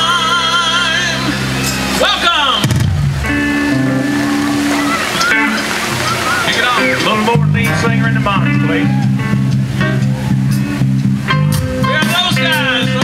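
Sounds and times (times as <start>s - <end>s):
rock band playing: 0.0s - 13.0s
person singing: 11.8s - 13.0s.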